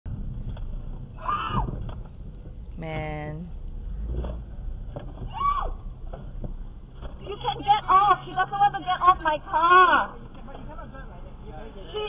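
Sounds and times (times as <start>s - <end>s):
car interior rumble: 0.1s - 12.0s.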